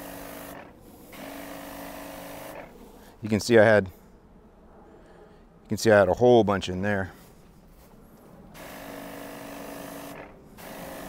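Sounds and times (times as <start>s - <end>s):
pump motor humming: 0.0s - 2.8s, 8.5s - 11.0s
sprayer nozzle hissing: 0.0s - 3.0s, 8.5s - 11.0s.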